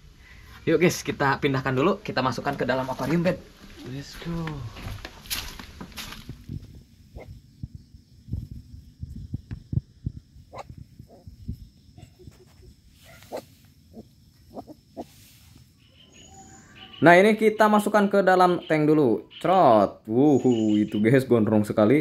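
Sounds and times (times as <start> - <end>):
knocks and rustles: 4.5 - 6.8.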